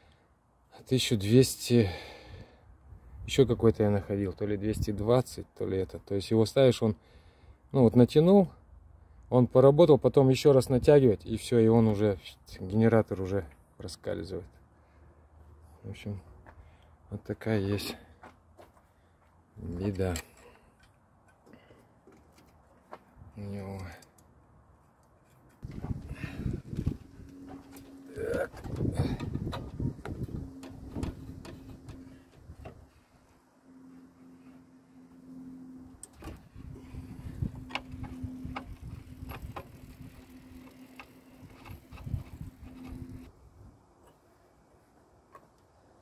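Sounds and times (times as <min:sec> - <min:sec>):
person muttering: 0:28.1 - 0:29.3.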